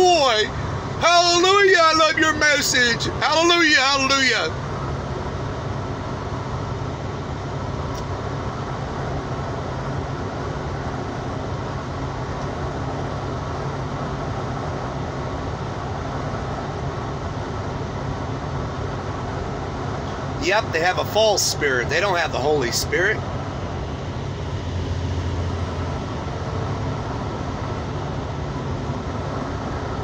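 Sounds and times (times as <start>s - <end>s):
vehicle road and engine drone: 0.0s - 30.0s.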